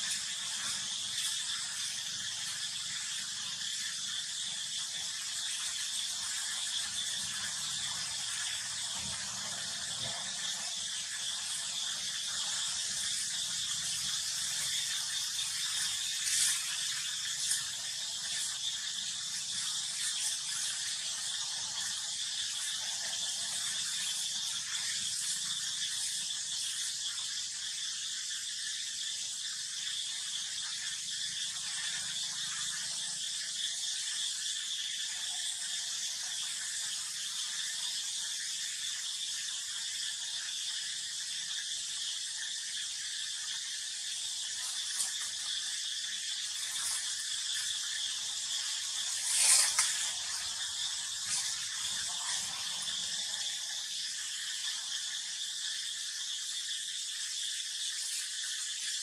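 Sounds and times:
high-pitched insect drone: 0.0 - 59.0.

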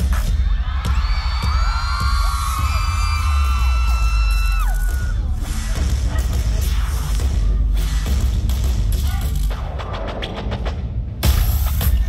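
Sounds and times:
bass-heavy dance music: 0.0 - 12.0
audience screaming: 0.2 - 5.4.

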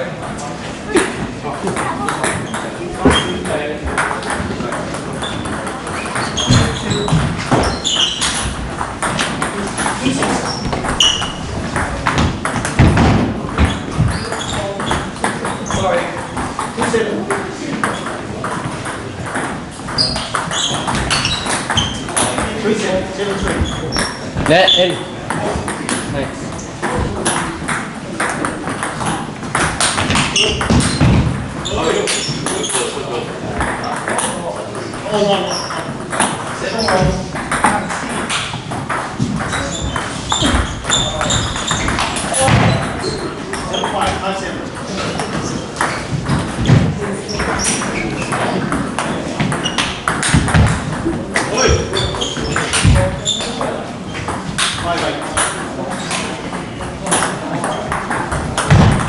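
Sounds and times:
background chatter of voices: 0.0 - 59.0
table tennis ball hitting paddles: 1.6 - 24.6, 25.2 - 59.0.

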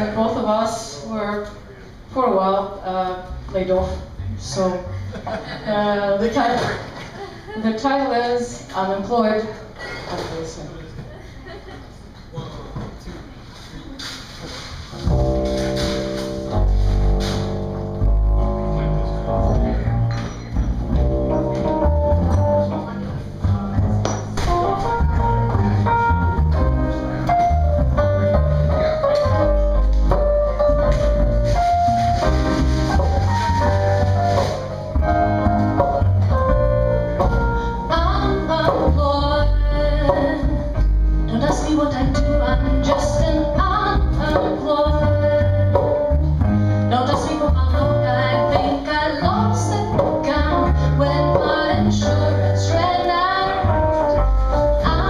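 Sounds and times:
double bass line: 2.1 - 6.3, 14.8 - 55.0
acoustic guitar: 13.6 - 55.0
keyboard melody: 15.1 - 55.0.

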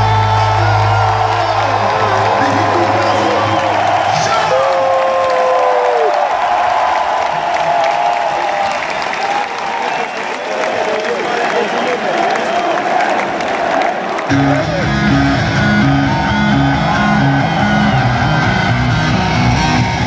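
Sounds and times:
crowd applauding and cheering: 0.0 - 20.0.

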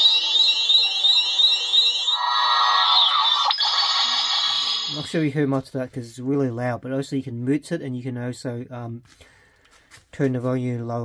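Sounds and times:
rising electronic chirp: 0.0 - 5.2
steady electronic tone: 0.0 - 5.2.

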